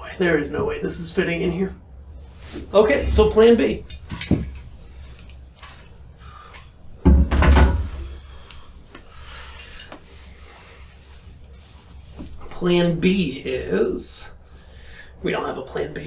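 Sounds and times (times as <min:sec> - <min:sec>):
soft rustling and handling: 0:00.3 - 0:06.8, 0:08.2 - 0:14.5.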